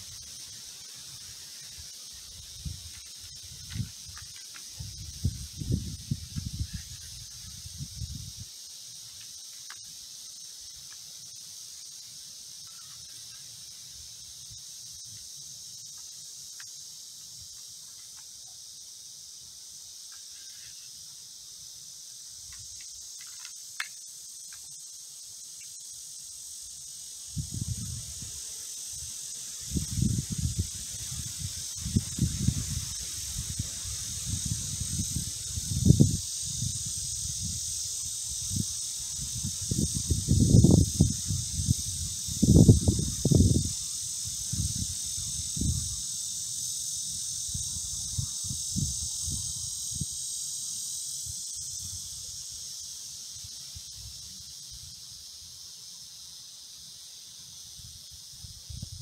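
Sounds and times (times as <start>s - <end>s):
insects droning: 0.0s - 59.0s
wind on microphone: 2.3s - 8.5s, 27.3s - 28.3s, 29.7s - 46.0s, 47.4s - 50.1s, 58.4s - 59.0s.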